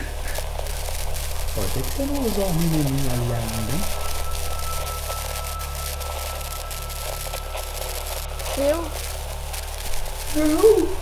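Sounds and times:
even hiss: 0.0 - 11.0
steady low drone: 0.0 - 11.0
thin high tone: 0.8 - 11.0.

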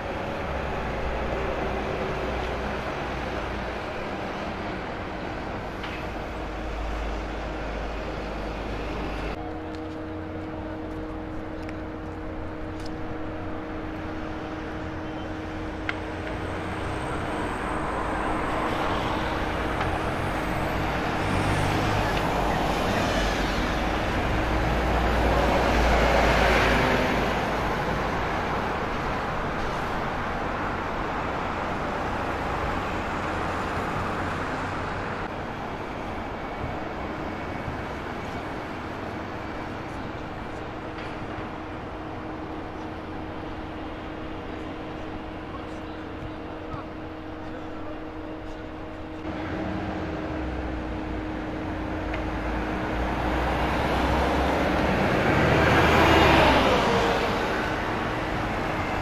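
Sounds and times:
bus passing close by: 0.0 - 46.7, 48.2 - 59.0
bus engine droning: 0.0 - 59.0
city street traffic: 0.0 - 59.0.

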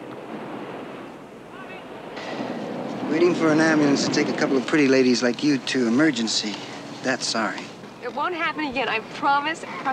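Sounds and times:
steady rushing hiss: 1.5 - 9.9.

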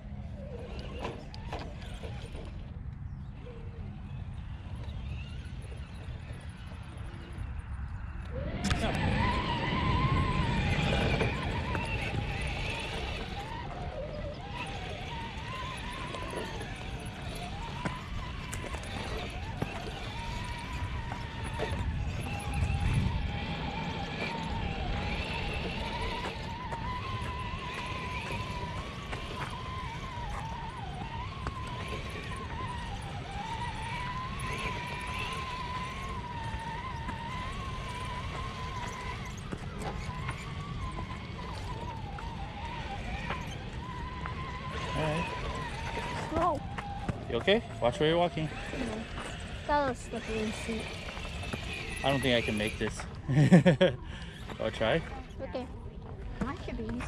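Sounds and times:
rc car electric motors whining: 0.0 - 57.0.

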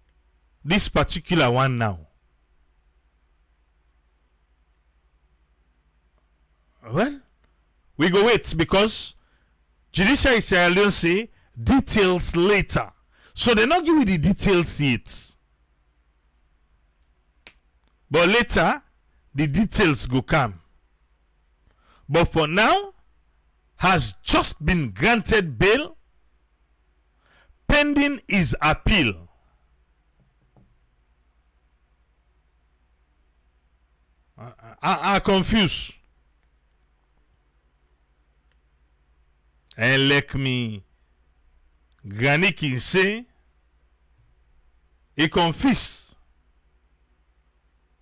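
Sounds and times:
low steady hum: 0.0 - 48.0
faint clicks: 36.0 - 37.4.

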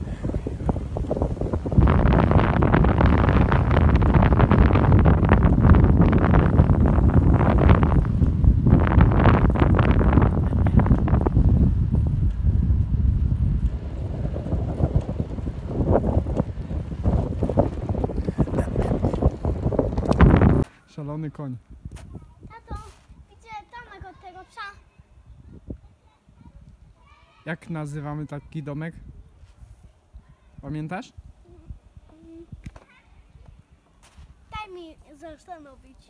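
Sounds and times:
wind buffeting microphone: 0.0 - 20.7, 21.7 - 27.1, 28.3 - 30.6.

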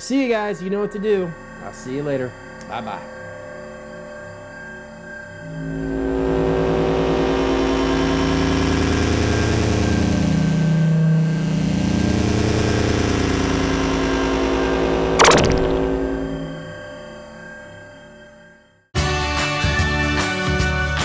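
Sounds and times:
sharp zap: 15.2 - 16.4.

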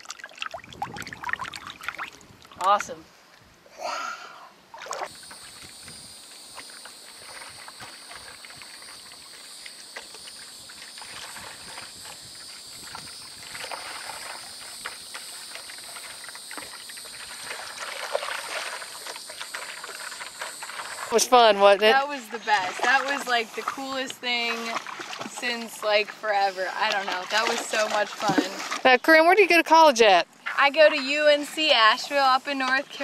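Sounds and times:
water sloshing: 0.0 - 3.0, 4.7 - 33.0
paddle strokes in water: 4.8 - 29.0
high-pitched insect chorus: 5.1 - 27.9.

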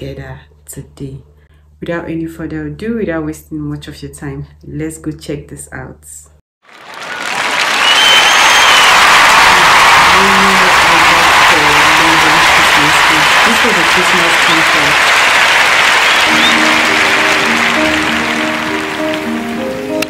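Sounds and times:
audience applauding: 6.6 - 20.0
music with held notes: 16.2 - 20.0.

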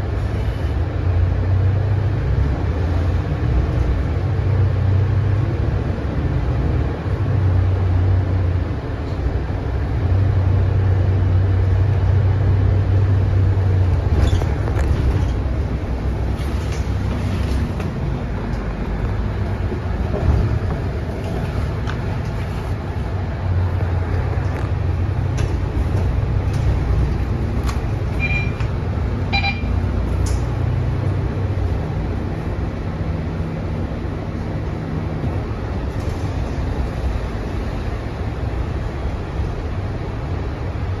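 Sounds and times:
bus engine rumble: 0.0 - 41.0
road noise: 0.0 - 41.0
short beeps: 28.2 - 28.7, 29.3 - 29.8.

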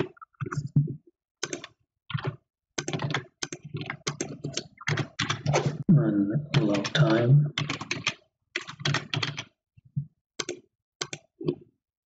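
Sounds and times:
typing on computer keyboard: 1.4 - 5.6, 6.5 - 9.6, 10.4 - 11.6.

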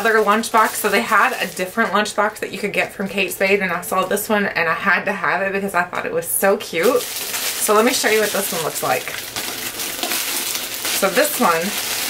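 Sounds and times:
plastic packaging crinkling: 0.0 - 2.3, 6.7 - 12.0.

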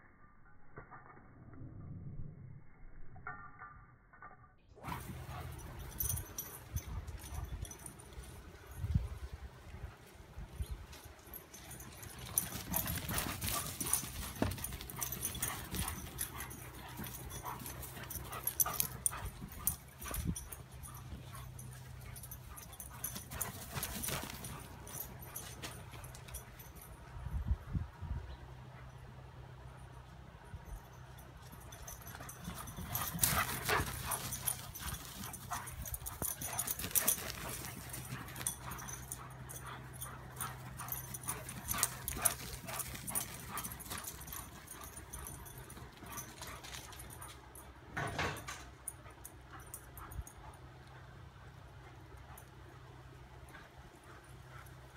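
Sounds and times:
steady low hum: 4.8 - 54.9
dog paws thudding and scuffling: 10.8 - 26.9, 31.5 - 47.4.

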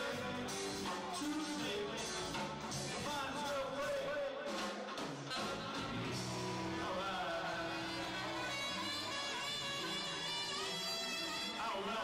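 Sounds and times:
man singing: 0.0 - 9.6, 11.4 - 12.0
live funk band: 0.0 - 12.0.

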